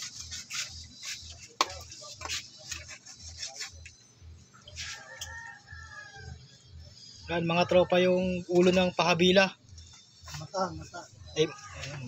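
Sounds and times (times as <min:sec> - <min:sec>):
rooster crowing: 0:04.8 - 0:06.6.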